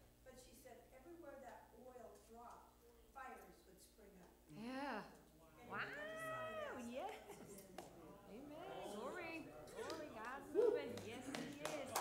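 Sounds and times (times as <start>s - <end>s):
high drawn-out cry: 5.7s - 6.9s.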